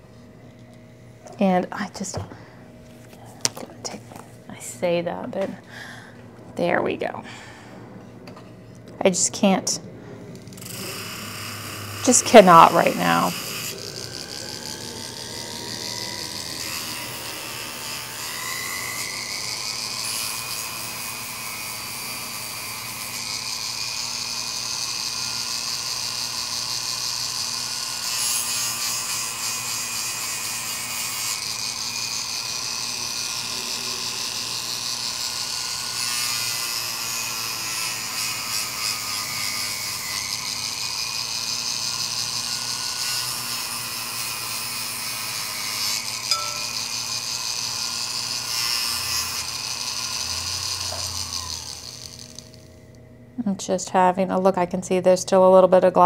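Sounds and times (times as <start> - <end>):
rotary tool grinding glass: 10.5 - 52.7.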